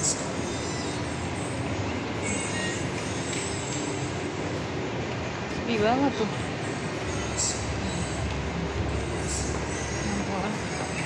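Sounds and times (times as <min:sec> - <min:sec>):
shopping mall background hum: 0:00.0 - 0:11.0.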